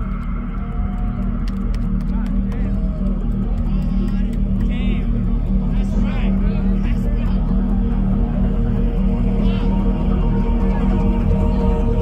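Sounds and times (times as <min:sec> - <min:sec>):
deep bass music: 0:00.0 - 0:12.0.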